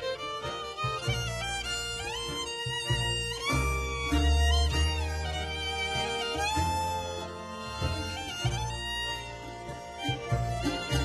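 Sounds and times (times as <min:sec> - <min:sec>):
button accordion: 0:00.0 - 0:11.0
cittern: 0:00.0 - 0:11.0
double bass: 0:00.0 - 0:11.0
fiddle: 0:00.0 - 0:11.0.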